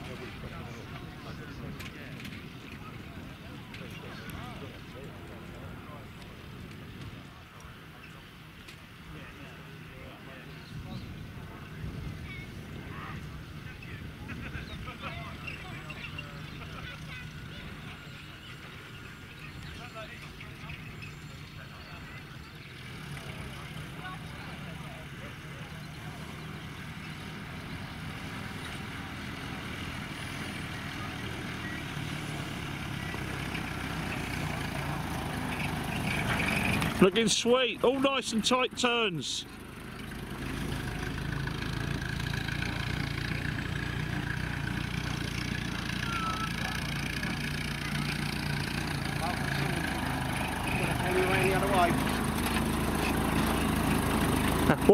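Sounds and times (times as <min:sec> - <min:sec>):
car engine running: 0:15.4 - 0:54.9.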